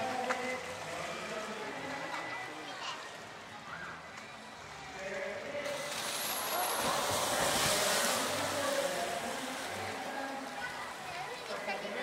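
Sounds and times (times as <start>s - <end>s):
orcas splashing water: 5.8s - 9.5s.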